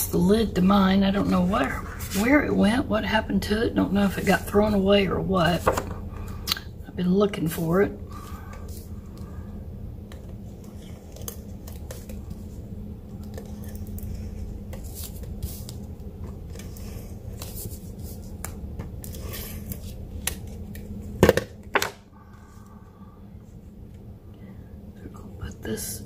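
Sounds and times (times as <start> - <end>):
low hum: 0.0 - 26.0.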